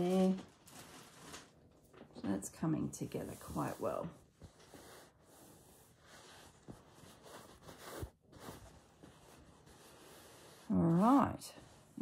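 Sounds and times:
hands rubbing stuffed fabric: 3.0 - 12.0.

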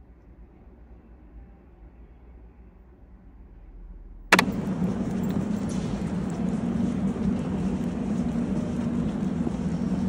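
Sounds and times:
steady low hum: 3.9 - 10.0
sharp click: 4.3 - 6.5
public place ambience: 4.3 - 10.0.

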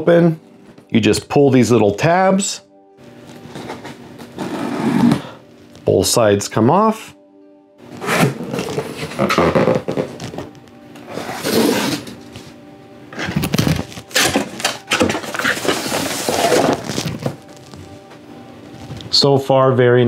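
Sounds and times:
background music: 0.0 - 20.0
cardboard scraping and rustling: 3.5 - 5.4, 8.0 - 12.3, 13.2 - 17.7.

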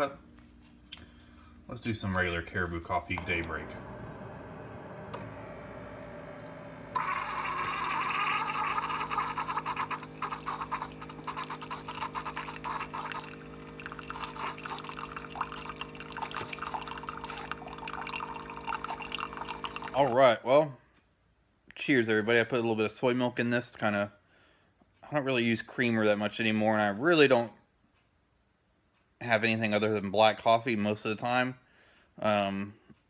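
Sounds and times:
coffee machine humming: 1.0 - 20.2
coffee trickling into mug: 7.0 - 20.2.

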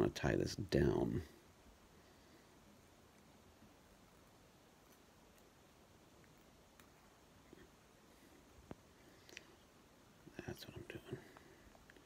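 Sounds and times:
person whispering: 10.3 - 11.6.

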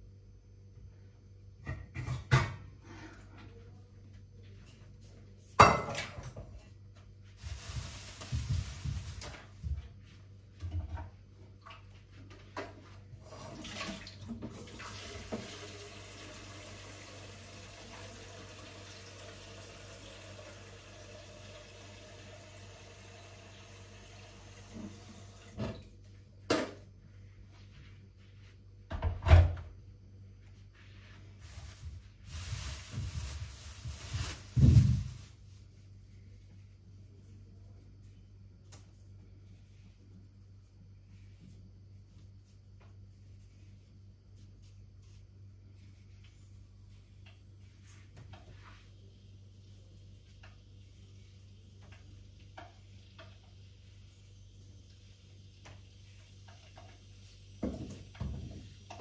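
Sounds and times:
kitchenware clattering: 5.6 - 6.4.

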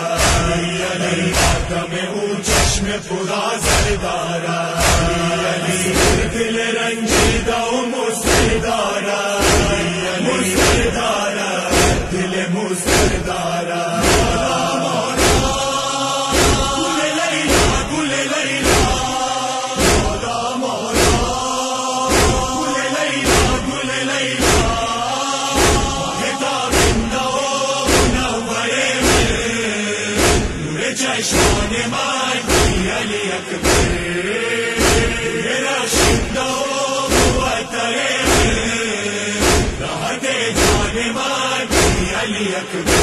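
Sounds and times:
men chanting in unison: 0.0 - 43.0
hands striking chest: 0.2 - 0.6, 9.4 - 9.8, 11.7 - 12.2, 12.9 - 13.3, 14.0 - 14.5, 15.2 - 15.6, 16.3 - 16.8, 17.5 - 17.9, 19.8 - 20.2, 21.0 - 21.4, 22.1 - 22.5, 24.4 - 24.8, 25.6 - 26.0, 26.7 - 27.2, 27.9 - 28.3, 30.2 - 30.6, 32.5 - 32.8, 33.6 - 34.0, 34.8 - 35.2, 37.1 - 37.5, 38.2 - 38.6, 39.4 - 39.8, 40.6 - 40.9, 41.7 - 42.0.

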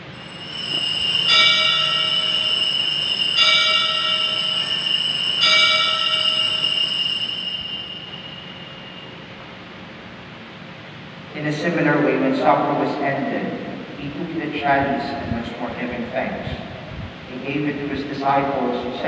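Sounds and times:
loud bell strokes: 0.0 - 9.6
sustained high bell ringing: 0.0 - 9.8.

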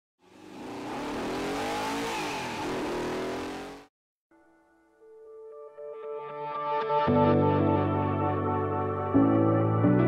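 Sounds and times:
car engine revving at speed: 0.2 - 3.9
road and wind noise: 0.2 - 3.9.

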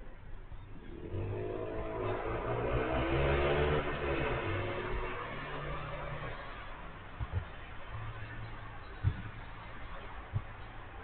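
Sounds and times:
vehicle engine revving: 0.8 - 6.8.

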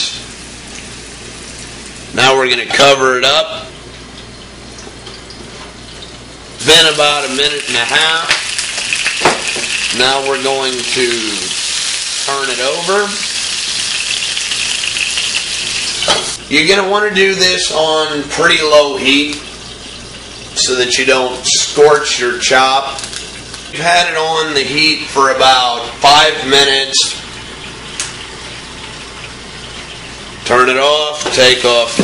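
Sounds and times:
meat sizzling in a skillet: 0.0 - 2.1, 6.6 - 16.4.

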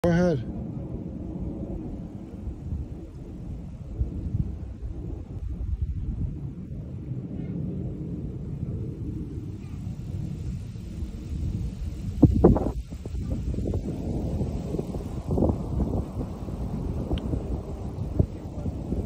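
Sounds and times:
low outdoor rumble: 0.0 - 19.0.

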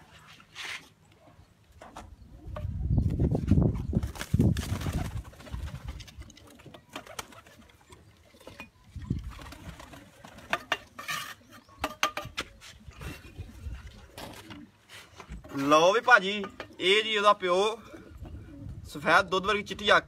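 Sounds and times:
pigeons cooing: 1.2 - 4.0, 4.8 - 18.9
pigeon wings flapping: 4.0 - 7.8, 9.2 - 10.5.

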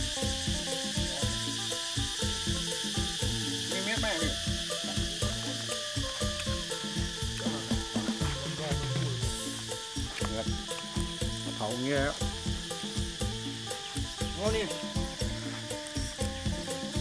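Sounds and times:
music of held notes: 0.0 - 17.0
wood fire crackling: 0.0 - 17.0.

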